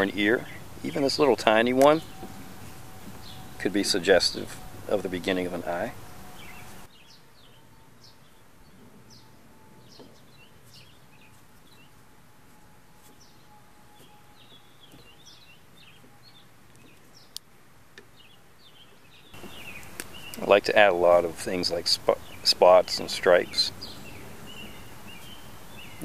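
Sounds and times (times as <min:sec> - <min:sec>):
birds chirping: 0:00.0 - 0:17.4, 0:18.0 - 0:26.0
low outdoor hiss: 0:00.0 - 0:26.0.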